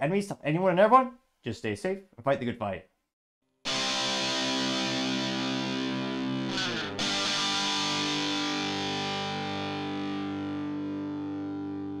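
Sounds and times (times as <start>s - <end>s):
distorted electric guitar chords: 3.7s - 12.0s
guitar sliding sweep: 3.7s - 12.0s.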